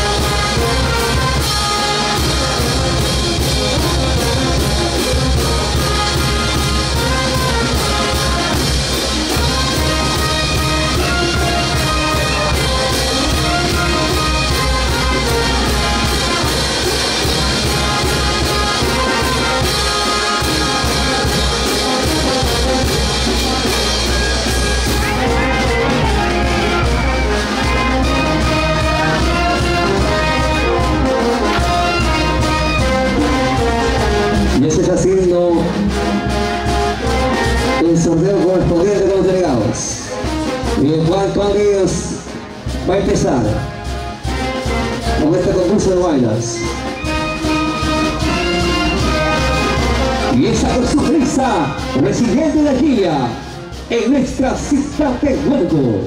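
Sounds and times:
brass playing held notes: 0.0 - 55.2
carnival band dance music: 0.0 - 56.0.

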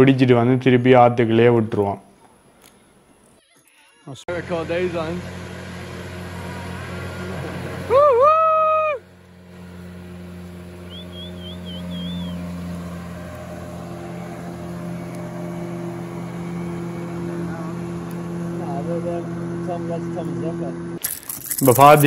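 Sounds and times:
outboard motorboat engine: 4.3 - 22.0
loud held call: 6.4 - 9.1.

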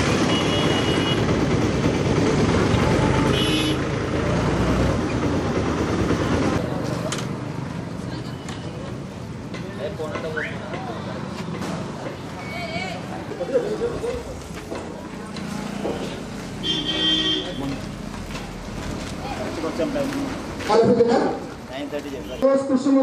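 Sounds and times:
vehicle running close by: 0.0 - 8.2.

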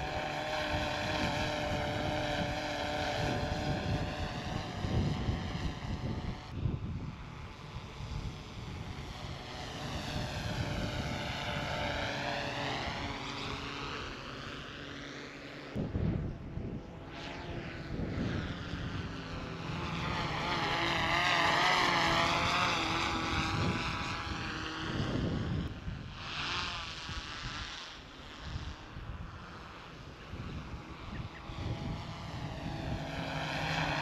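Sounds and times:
wind rumble on microphone: 0.0 - 14.0, 15.7 - 34.0
drone propellers buzzing: 0.0 - 34.0.

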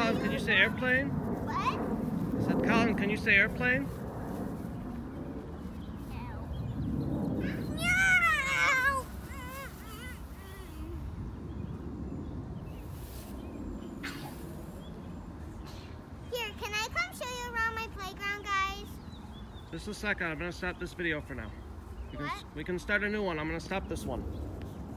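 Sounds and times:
young child squealing: 7.4 - 10.9.

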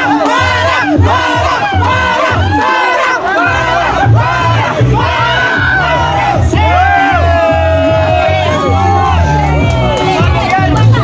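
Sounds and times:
crowd shouting and cheering: 0.0 - 11.0
loud music with bass beat: 0.0 - 11.0.

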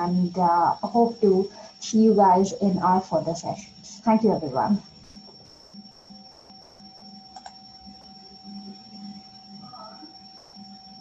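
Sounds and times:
high-pitched whine: 0.0 - 11.0.

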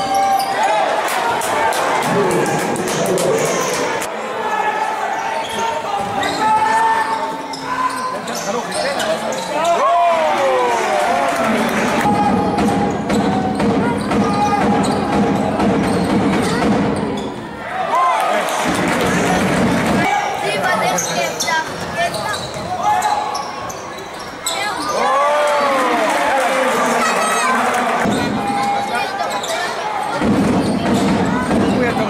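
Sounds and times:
players shouting and chatter: 0.0 - 32.0.

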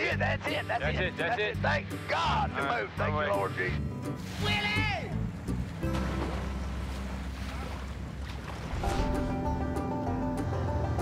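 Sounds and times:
boat engine rumble: 0.4 - 11.0
water noise: 2.2 - 11.0.

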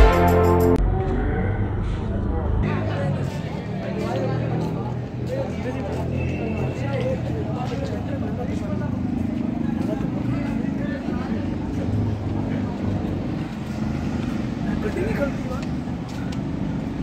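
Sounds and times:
traffic engine rumble: 0.8 - 17.0
faint background voices: 0.9 - 17.0.

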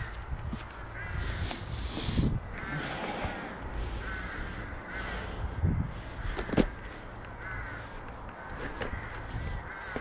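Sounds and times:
wind on camera: 0.0 - 6.7
bird's harsh calls: 0.0 - 10.0
wheels rumbling on dirt trail: 0.0 - 10.0.

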